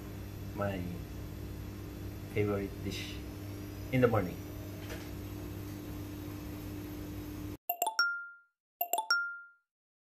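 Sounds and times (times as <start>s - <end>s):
electronic blips ending in ding: 7.7s - 9.7s.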